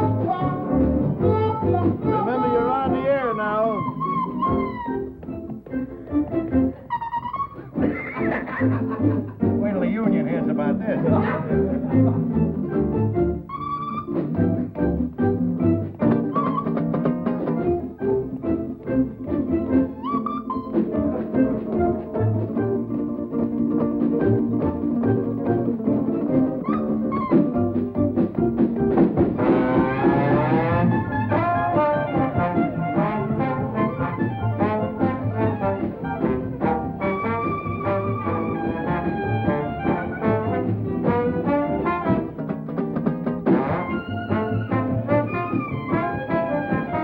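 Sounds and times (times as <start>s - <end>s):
trombone: 0.0s - 5.0s, 19.2s - 47.0s
double bass: 0.0s - 47.0s
ukulele: 0.0s - 47.0s
electric guitar: 10.4s - 47.0s.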